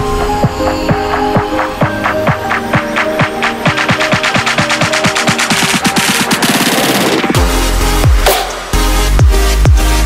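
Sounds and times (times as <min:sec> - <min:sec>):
electronic dance music: 0:00.0 - 0:10.0
kick drum beats and roll: 0:00.2 - 0:09.9.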